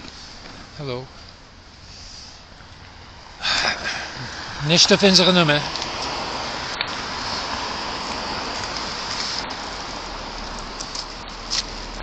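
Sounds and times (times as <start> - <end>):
tyres hissing on wet road: 1.7 - 12.0.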